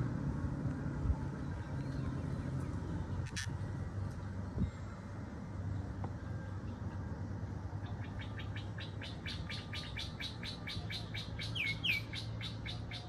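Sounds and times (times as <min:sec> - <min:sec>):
bird chirping: 0:07.8 - 0:13.0.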